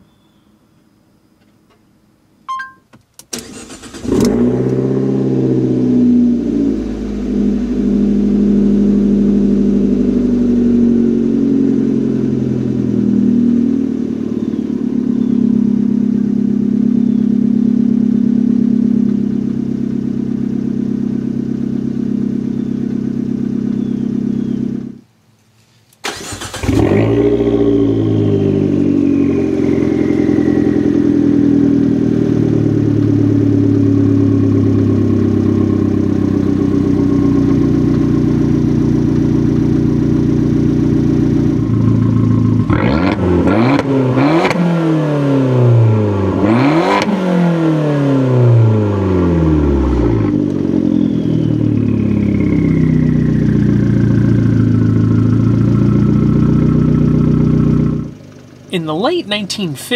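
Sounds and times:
car engine starting and idling: 1.3s - 59.9s.

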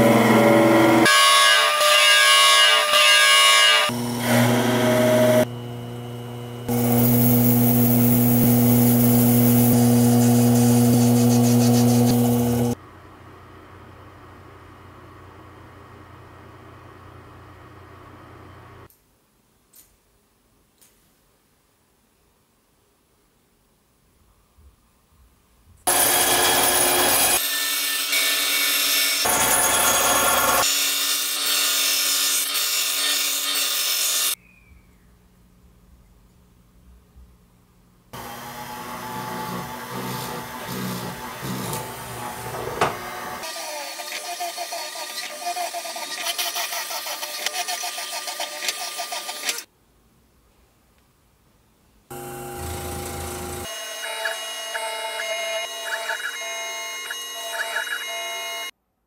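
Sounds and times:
band saw cutting: 0.0s - 12.8s, 25.9s - 34.4s, 38.2s - 49.7s, 52.1s - 58.7s
drill press drilling: 6.7s - 12.8s, 25.9s - 27.4s, 38.2s - 49.7s, 52.1s - 58.7s.

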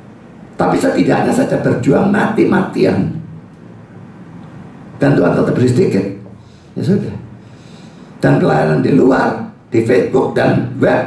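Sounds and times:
low room noise: 0.0s - 11.0s
man talking: 0.6s - 3.3s, 5.0s - 7.3s, 8.2s - 11.0s.

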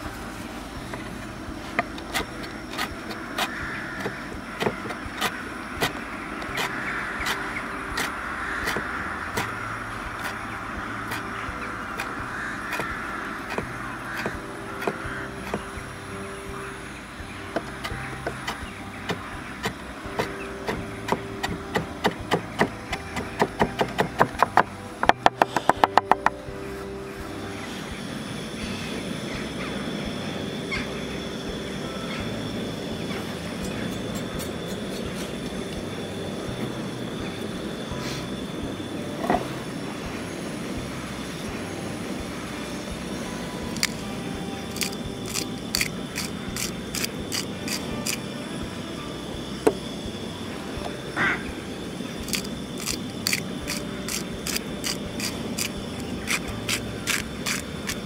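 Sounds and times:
steady background hum: 0.0s - 58.0s
small ticks: 44.7s - 48.2s, 52.3s - 58.0s.

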